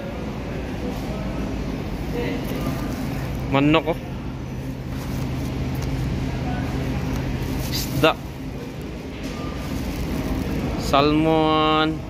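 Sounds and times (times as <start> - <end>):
supermarket background hum: 0.0 - 12.0.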